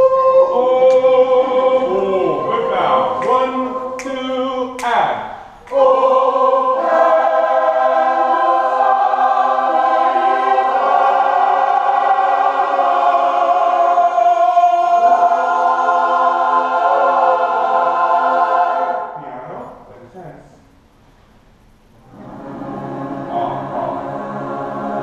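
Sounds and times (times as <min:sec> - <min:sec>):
mixed choir singing held chords: 0:00.0 - 0:19.4, 0:22.0 - 0:25.0.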